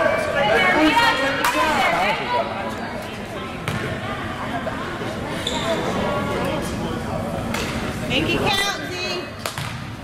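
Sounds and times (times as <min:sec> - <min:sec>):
voices echoing: 0:00.0 - 0:09.9.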